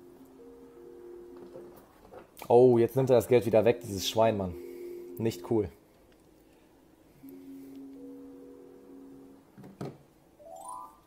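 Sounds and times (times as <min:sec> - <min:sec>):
slot machine chord of tones: 0:10.4 - 0:11.0.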